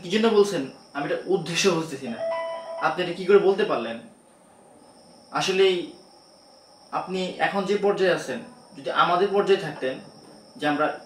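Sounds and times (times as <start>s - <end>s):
man speaking: 0.0s - 4.1s
two-tone electronic chime: 2.2s - 3.0s.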